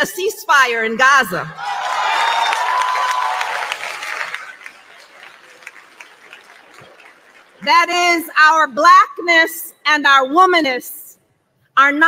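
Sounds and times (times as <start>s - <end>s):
audience applauding: 1.6s - 7.6s.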